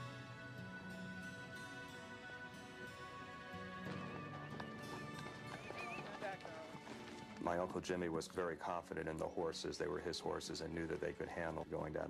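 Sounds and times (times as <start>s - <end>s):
background music: 0.0s - 12.0s
horse hooves clip-clopping: 3.0s - 9.4s, 10.0s - 12.0s.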